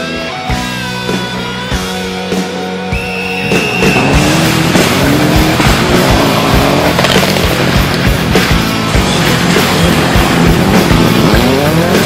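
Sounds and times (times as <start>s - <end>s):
music: 0.0s - 12.0s
tyres on gravel: 3.4s - 11.7s
rally car engine revving: 3.4s - 12.0s.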